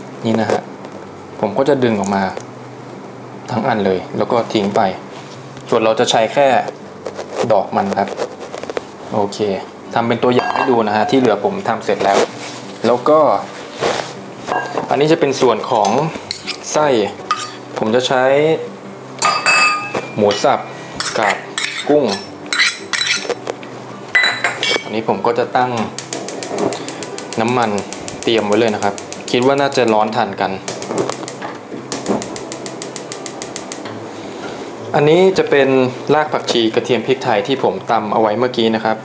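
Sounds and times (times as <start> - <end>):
metal spoon clinking steel bowl: 10.4 - 10.8, 17.3 - 17.6, 19.2 - 23.3, 24.2 - 24.9
gas stove igniter clicking: 26.0 - 29.9, 30.7 - 33.9.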